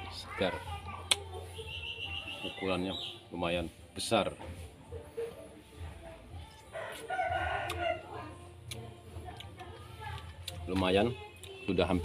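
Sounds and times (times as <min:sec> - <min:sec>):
rooster crowing: 0:06.7 - 0:08.3.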